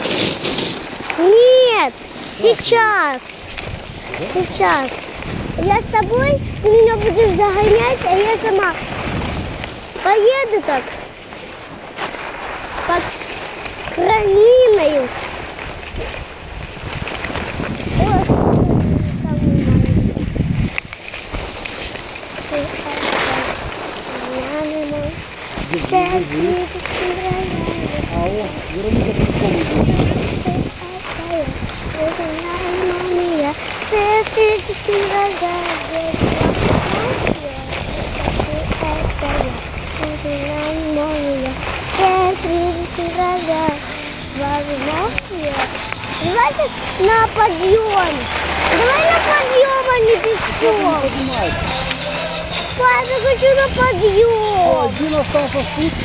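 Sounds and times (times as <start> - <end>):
skis sliding over snow: 0.0 - 56.0
wind on microphone: 0.0 - 56.0
low rumble: 12.3 - 56.0
child singing wordless notes: 38.4 - 48.2.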